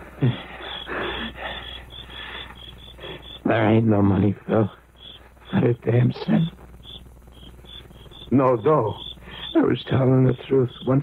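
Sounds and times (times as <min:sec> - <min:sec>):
man breathing heavily: 0:00.0 - 0:03.3
crickets chirping: 0:00.0 - 0:11.0.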